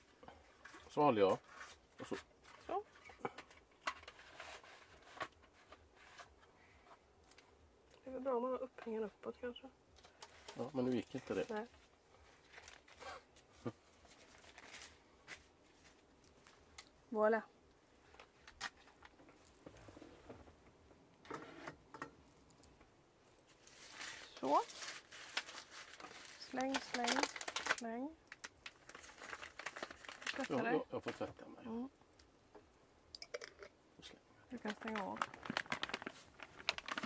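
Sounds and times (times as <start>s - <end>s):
soft rustles: 3.9s - 7.6s, 10.0s - 16.9s, 22.2s - 27.9s, 34.6s - 37.0s
packaging being crumpled: 10.4s - 13.2s, 14.0s - 15.1s, 23.4s - 31.3s, 34.5s - 37.0s.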